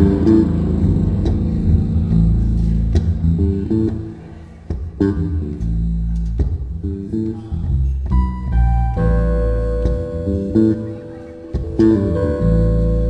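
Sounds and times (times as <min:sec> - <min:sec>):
held high keyboard notes: 0:00.0 - 0:06.1, 0:08.2 - 0:13.0
bass line: 0:00.0 - 0:13.0
keyboard chords: 0:00.0 - 0:13.0.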